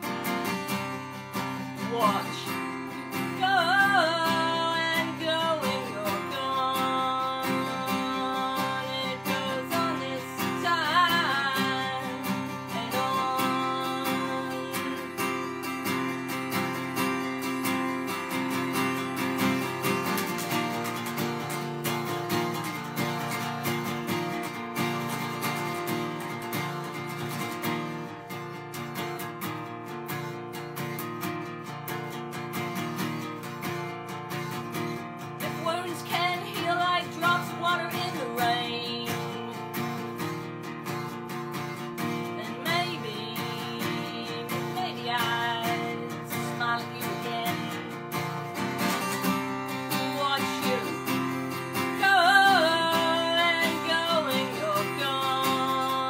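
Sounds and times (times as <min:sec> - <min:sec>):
woman singing: 0:00.0 - 0:28.3, 0:34.4 - 0:56.0
acoustic guitar strumming: 0:00.0 - 0:56.0.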